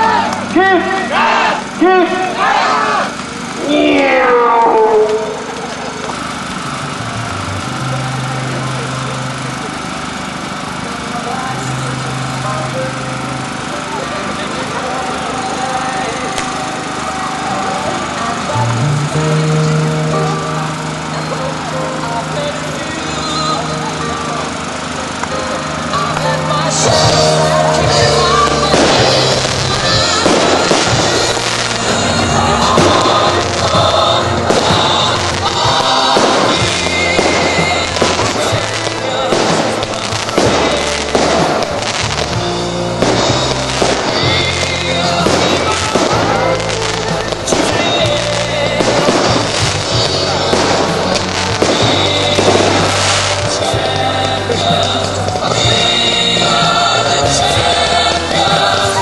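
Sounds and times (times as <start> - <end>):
music with long held notes: 0.0 - 59.0
fireworks bangs and crackles: 3.1 - 19.8, 20.8 - 59.0.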